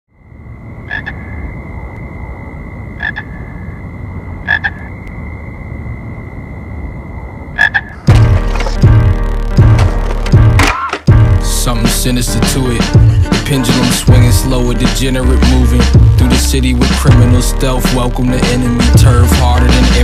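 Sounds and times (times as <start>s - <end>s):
croak-like calls: 0.1s - 9.2s
high whine: 0.1s - 20.0s
hip-hop beat with bass kicks: 8.1s - 20.0s.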